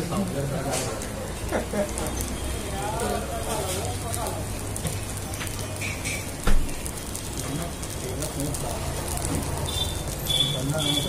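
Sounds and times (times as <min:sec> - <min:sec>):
buns sizzling on griddle: 0:00.0 - 0:11.0.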